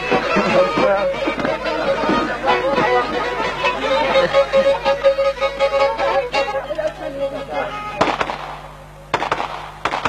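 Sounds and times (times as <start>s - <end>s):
sharp explosive bangs: 8.0s - 10.0s.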